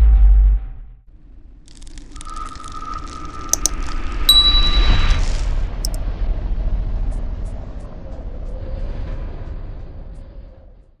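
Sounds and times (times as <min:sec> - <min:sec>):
mouse clicks: 0:03.5 - 0:03.8
bell-like ding: 0:04.3 - 0:05.4
steady tone: 0:04.3 - 0:05.4.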